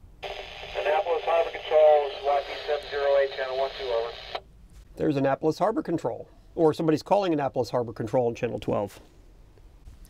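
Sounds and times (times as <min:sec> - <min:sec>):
radio speech through speaker: 0:00.2 - 0:04.4.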